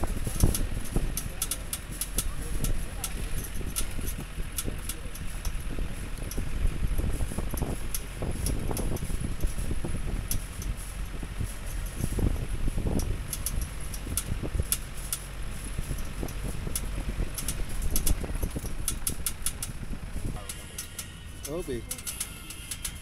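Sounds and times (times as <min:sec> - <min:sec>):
vehicle knocks and rattles: 0:00.0 - 0:23.0
vehicle rumbling on dirt track: 0:00.0 - 0:23.0.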